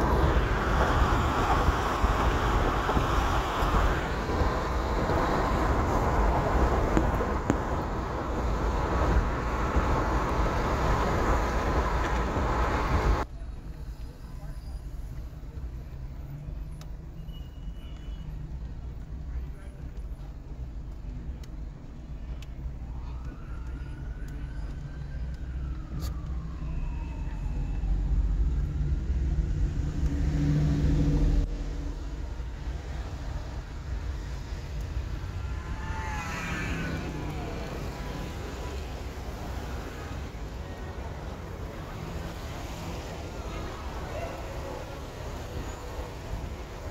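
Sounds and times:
low hum of slow car: 0.0 - 46.9
road and tyre noise inside car: 0.0 - 46.9
vehicle rumble: 0.0 - 46.9
faint siren: 22.6 - 29.0, 34.4 - 46.9.

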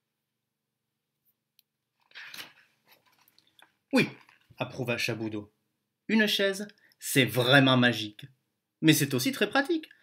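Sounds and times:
book page turning: 2.0 - 4.6
man speaking: 3.9 - 10.0.

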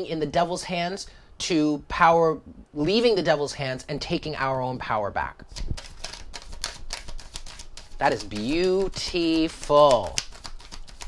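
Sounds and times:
cards being shuffled: 5.5 - 11.0.

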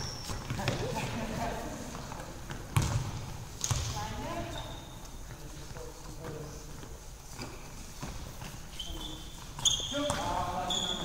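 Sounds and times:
players calling and shouting: 8.4 - 11.0.

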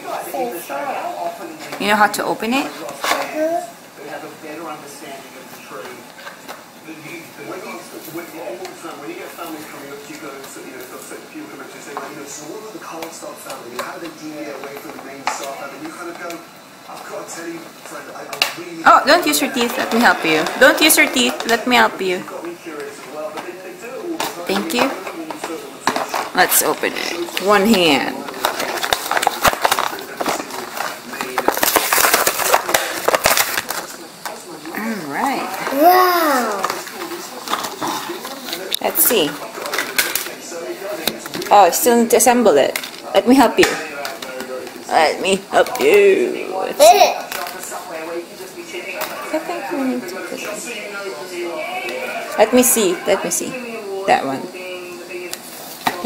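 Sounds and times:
plastic package crinkling: 24.7 - 34.7
quiet voices: 32.5 - 41.4.

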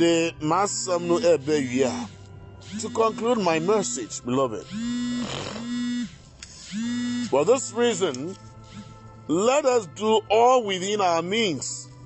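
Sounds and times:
man speaking: 0.0 - 4.7, 7.2 - 8.4.

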